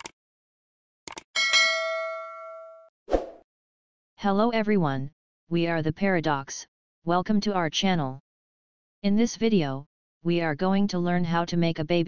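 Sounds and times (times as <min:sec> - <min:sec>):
bright bell ding: 0:01.4 - 0:02.9.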